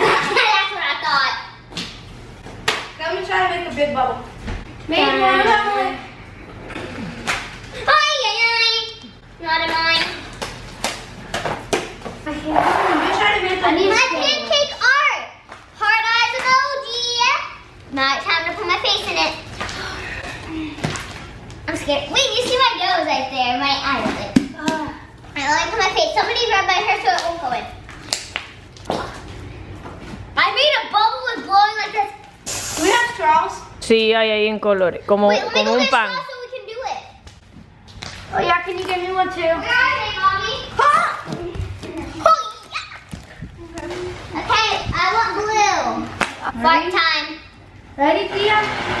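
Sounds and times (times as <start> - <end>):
burst of hissing noise: 32.4 - 33.2.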